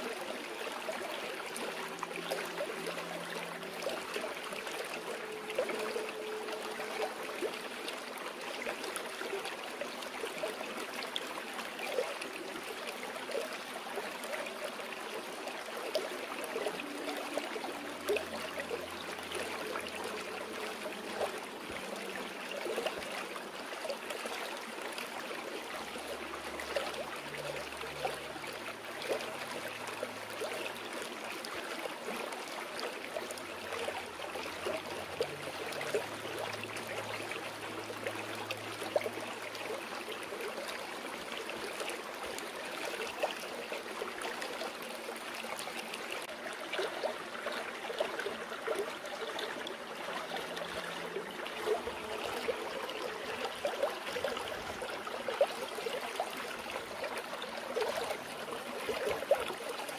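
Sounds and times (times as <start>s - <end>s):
water babbling over rocks: 0.0s - 59.9s.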